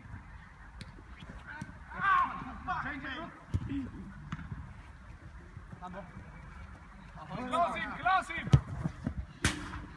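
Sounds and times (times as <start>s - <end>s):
players shouting: 1.5s - 3.3s.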